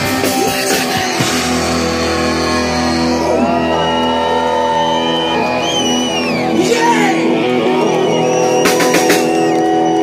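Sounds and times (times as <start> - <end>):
distorted electric guitar: 0.0 - 10.0
live rock band: 0.0 - 10.0
people shouting and whooping: 1.8 - 10.0.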